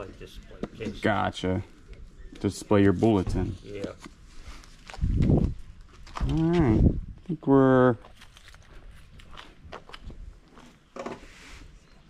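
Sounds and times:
footsteps on concrete: 8.0s - 11.2s.

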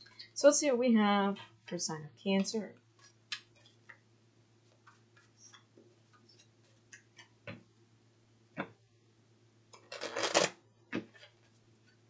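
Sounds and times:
cards shuffled by hand: 9.8s - 11.4s.

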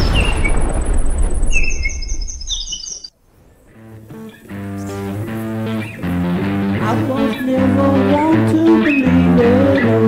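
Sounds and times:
deep boom rumble: 0.0s - 5.3s
high chirping tones: 1.5s - 3.1s.

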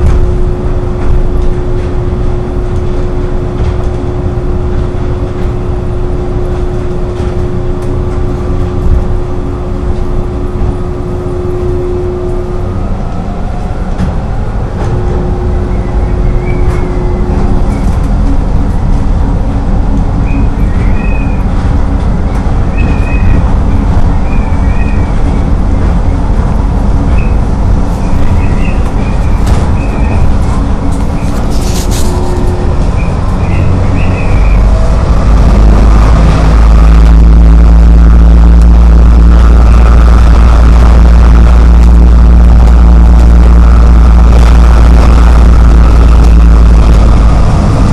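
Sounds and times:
train low rumble: 0.0s - 47.9s
wheel squeaks on curve: 22.7s - 26.2s.

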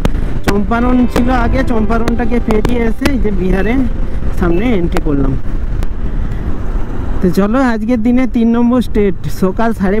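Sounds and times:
wind and road noise: 0.0s - 10.0s
man talking: 0.4s - 5.4s, 7.2s - 10.0s.

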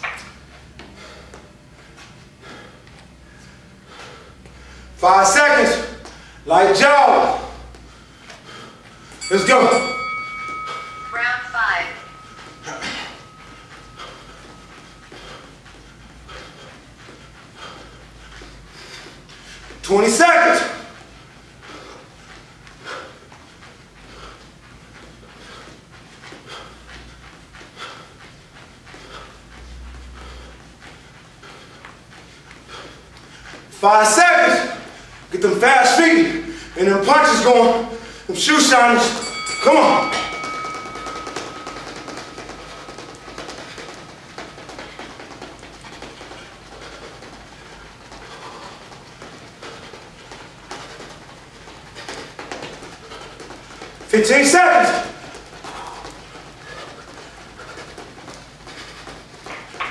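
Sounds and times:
man panting hard: 0.6s - 5.0s, 5.6s - 6.6s, 7.4s - 9.3s, 12.0s - 19.9s, 20.8s - 59.8s
shoes tapping and scuffing on floor: 12.3s - 33.8s, 40.1s - 59.9s.

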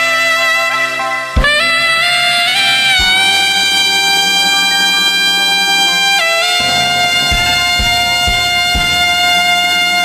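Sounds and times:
backing track music: 0.0s - 10.0s
soprano saxophone long note: 0.0s - 10.0s.

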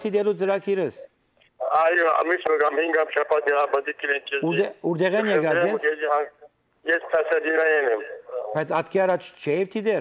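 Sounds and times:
man talking: 0.0s - 10.0s
person talking over phone line: 1.6s - 8.8s.

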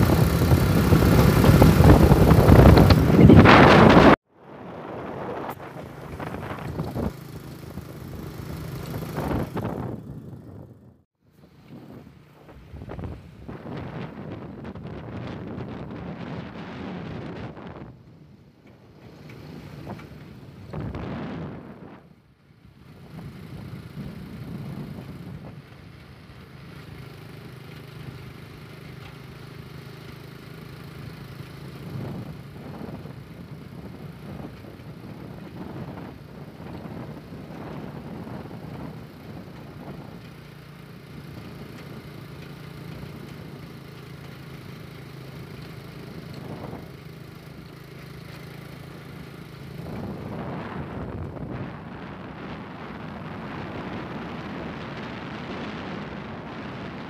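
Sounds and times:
wind on microphone: 0.0s - 11.0s, 11.6s - 18.4s, 19.7s - 22.2s, 22.9s - 25.8s, 31.8s - 40.3s, 46.0s - 47.0s, 49.0s - 57.0s
vehicle engine humming: 0.0s - 57.0s.

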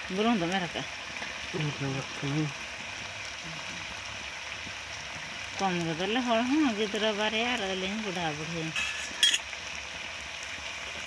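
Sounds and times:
meat sizzling in a pan: 0.0s - 11.0s.

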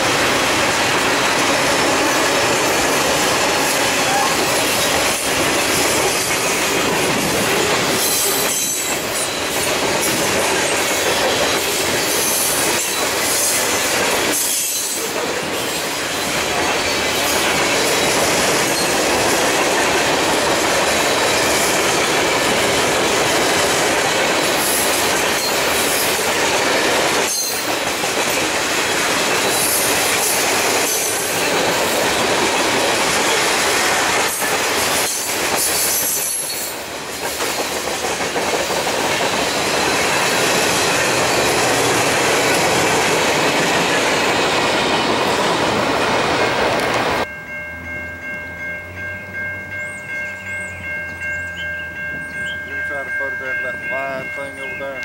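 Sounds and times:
freight cars rolling on rails: 0.0s - 55.0s.

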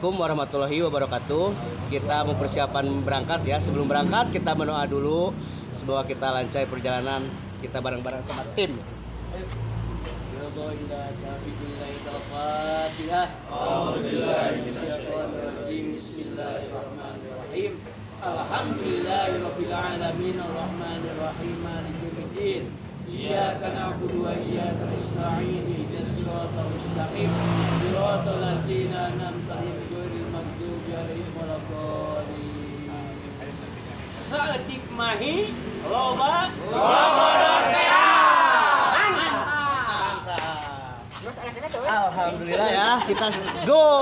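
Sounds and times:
man chanting prayer: 10.3s - 33.5s.

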